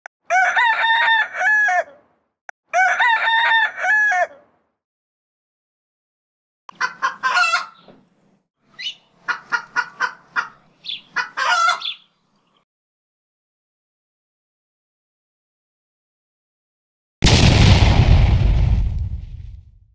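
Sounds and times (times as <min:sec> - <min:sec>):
rooster crowing: 0:00.3 - 0:02.0, 0:02.7 - 0:04.5
chicken clucks: 0:06.7 - 0:08.0, 0:08.8 - 0:12.0.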